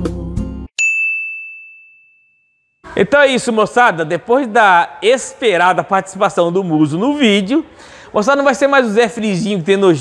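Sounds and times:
background music: 0:00.0 - 0:00.7
bright bell-like ding: 0:00.8 - 0:02.9.

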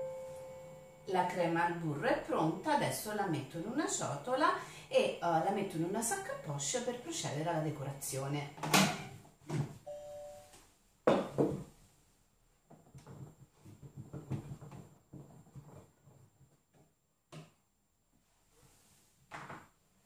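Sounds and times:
two-tone beep: 0:09.9 - 0:10.4.

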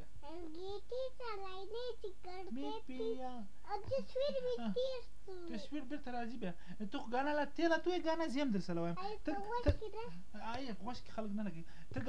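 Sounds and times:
child singing: 0:00.2 - 0:05.5.

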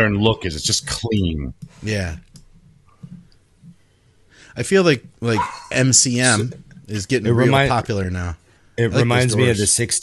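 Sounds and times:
man talking: 0:00.0 - 0:02.3, 0:04.5 - 0:10.0.

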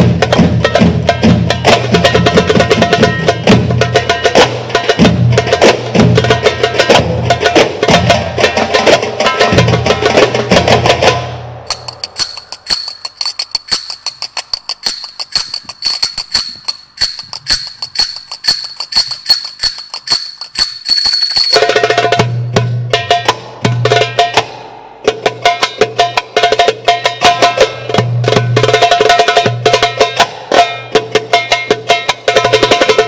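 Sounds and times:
percussion ensemble fast rhythm: 0:00.0 - 0:33.0
thin steady high ringing: 0:11.6 - 0:22.3.

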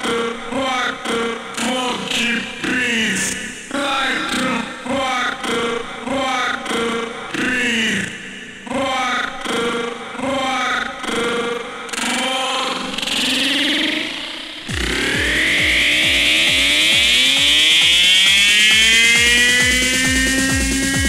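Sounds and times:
electronic dance music: 0:00.0 - 0:07.2, 0:11.5 - 0:21.0
rising synth line: 0:13.6 - 0:21.0
kick drum: 0:14.7 - 0:21.0.

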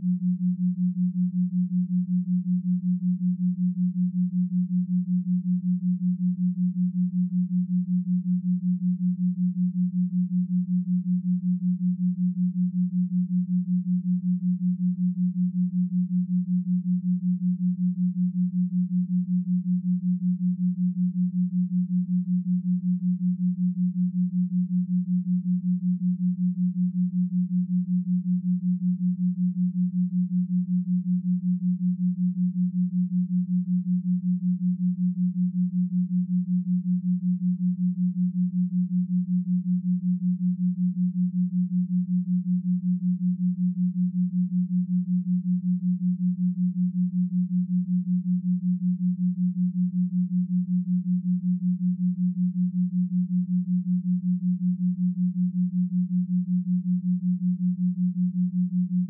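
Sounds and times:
low pulsing pure tone: 0:00.0 - 0:59.0.

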